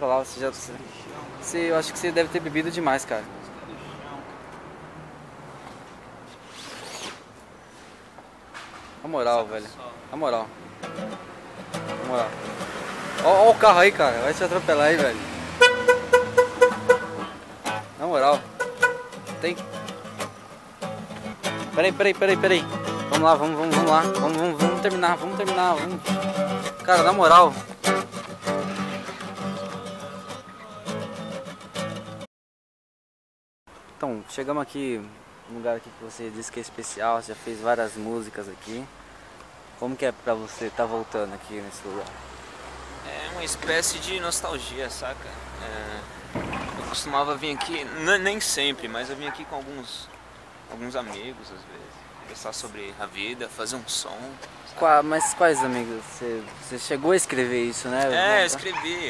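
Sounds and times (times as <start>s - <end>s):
fabric rubbing handling noise: 6.2s - 8.1s
zip-like sweep: 6.3s - 7.3s
classical guitar strumming: 10.8s - 13.6s, 14.4s - 32.2s.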